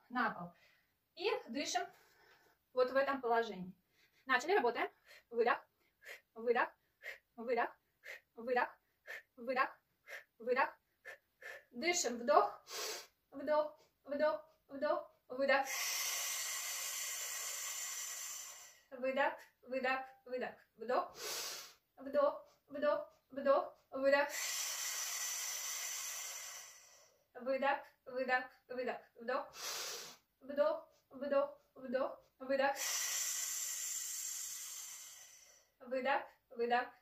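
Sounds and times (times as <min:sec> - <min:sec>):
woman exhaling with a hiss: 0:15.6 - 0:18.9, 0:24.3 - 0:27.2, 0:29.6 - 0:30.2, 0:32.7 - 0:35.7.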